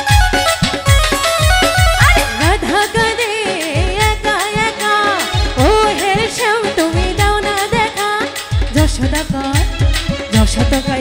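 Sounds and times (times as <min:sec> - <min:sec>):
instrumental backing: 0:00.0 - 0:11.0
regular drum beat: 0:00.0 - 0:11.0
woman singing folk song: 0:02.1 - 0:11.0.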